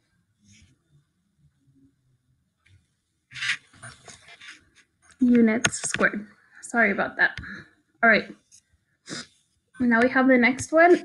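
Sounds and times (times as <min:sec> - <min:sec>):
faint breathy noises: 0:07.3 - 0:07.8.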